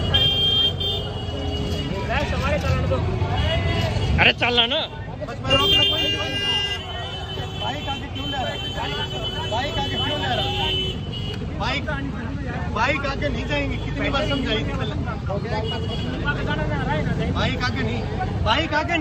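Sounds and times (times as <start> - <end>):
people talking and calling out: 0.0 - 19.0.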